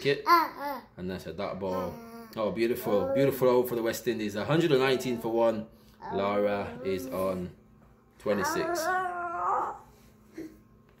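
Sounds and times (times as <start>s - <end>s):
young child whining: 8.3s - 10.6s.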